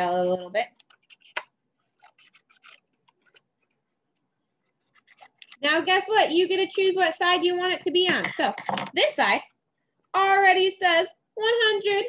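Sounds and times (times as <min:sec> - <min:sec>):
scissors snipping paper: 0:00.6 - 0:03.7, 0:04.6 - 0:05.6.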